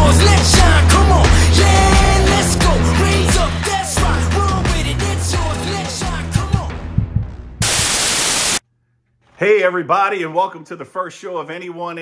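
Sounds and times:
rock music: 0:00.0 - 0:08.6
drum hits: 0:06.4 - 0:08.0
loud white-noise static: 0:07.6 - 0:08.6.

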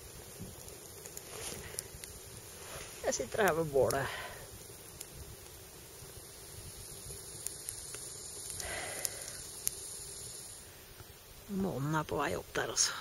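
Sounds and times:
campfire hissing and crackling: 0:00.0 - 0:13.0.

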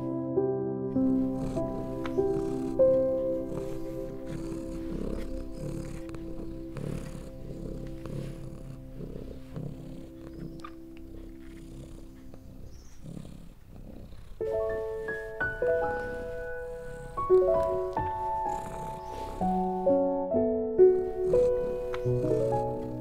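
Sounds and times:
soft background music: 0:00.0 - 0:23.0
cat purring: 0:00.9 - 0:20.2, 0:20.8 - 0:23.0.

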